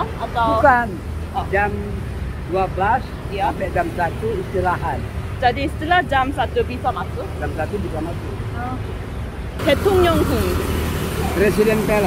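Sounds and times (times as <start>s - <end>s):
man and woman talking: 0.0s - 8.9s, 9.6s - 12.0s
street traffic rumble: 0.0s - 12.0s.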